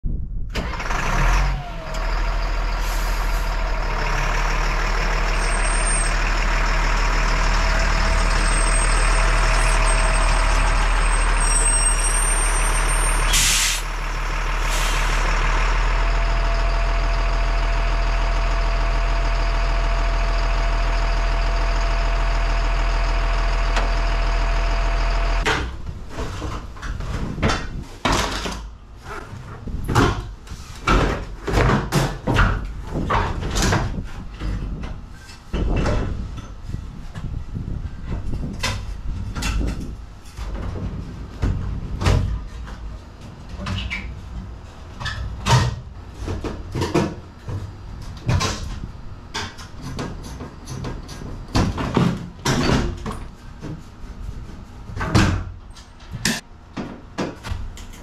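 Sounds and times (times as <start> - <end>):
diesel truck engine: 0.2 - 58.0
air brakes hissing: 2.8 - 3.6, 11.1 - 13.9, 14.5 - 15.4.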